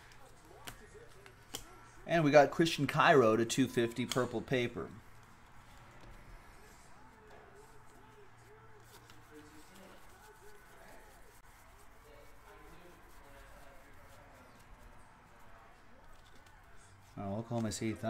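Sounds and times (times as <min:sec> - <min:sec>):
faint indistinct voices: 0:00.0 - 0:18.0.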